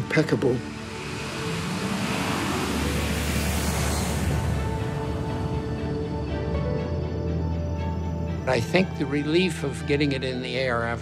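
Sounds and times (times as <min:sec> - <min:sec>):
jet airliner taking off: 0:00.0 - 0:09.8
background music sustained notes: 0:00.0 - 0:11.0.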